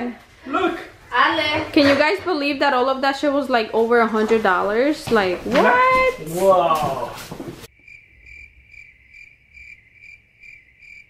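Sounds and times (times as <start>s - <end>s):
cricket chirping: 7.7s - 11.0s.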